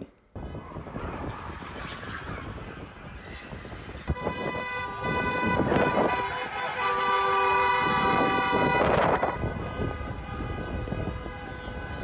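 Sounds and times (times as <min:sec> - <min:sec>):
street traffic noise: 0:00.0 - 0:12.0
car horns honking: 0:04.1 - 0:11.8.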